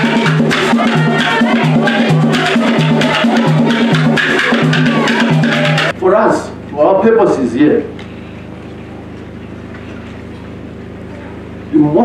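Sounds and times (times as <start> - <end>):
loudspeaker hum and hiss: 0.0 - 9.5, 10.4 - 12.0.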